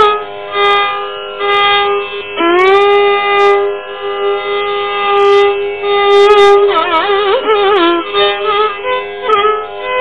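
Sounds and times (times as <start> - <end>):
long held classical note: 0.0 - 10.0.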